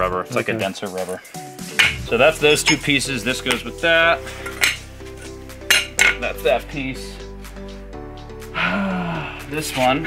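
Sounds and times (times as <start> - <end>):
metal car parts clinking: 4.4 - 4.8, 5.7 - 6.2.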